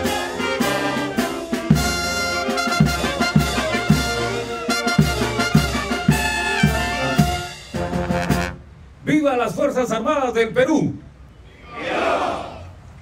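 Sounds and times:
brass band playing a march: 0.0s - 8.8s.

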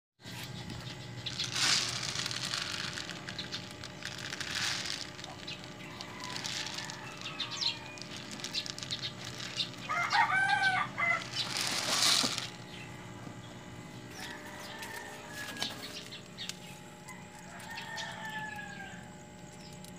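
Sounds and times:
dry pellets rattling into cap: 1.2s - 12.7s, 17.3s - 19.9s
plastic bottle crackling: 1.2s - 12.7s
chicken calling: 4.8s - 12.4s.

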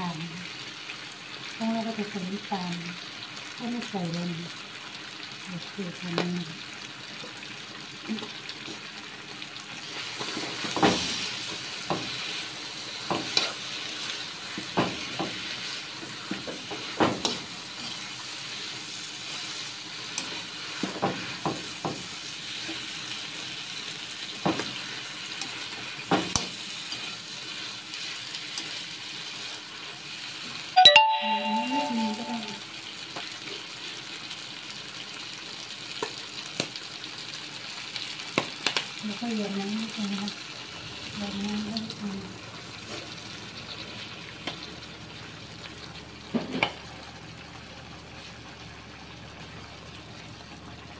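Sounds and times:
food sizzling in a wok: 0.0s - 50.9s
brief ringing tone: 30.8s - 32.6s.

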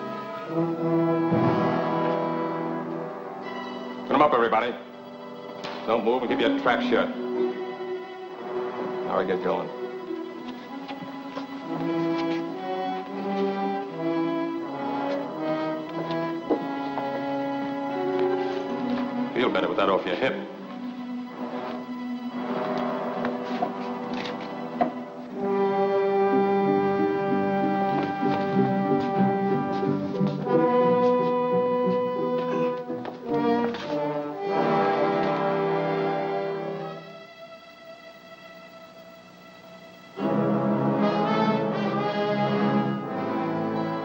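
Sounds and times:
orchestral strings playing: 0.0s - 44.0s.

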